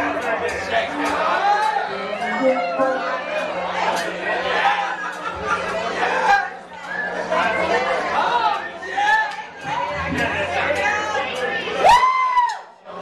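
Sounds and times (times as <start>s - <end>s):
chatter of voices: 0.0s - 13.0s
loud rising pitched tone: 2.0s - 3.9s.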